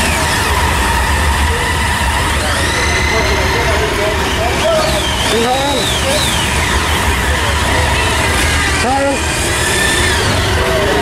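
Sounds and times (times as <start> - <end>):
motorcycle engines running: 0.0 - 11.0.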